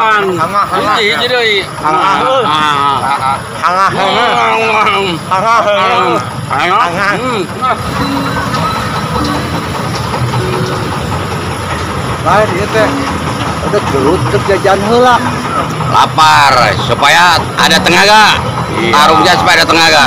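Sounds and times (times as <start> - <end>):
men talking: 0.0 - 20.0
low mechanical rumble: 1.6 - 20.0.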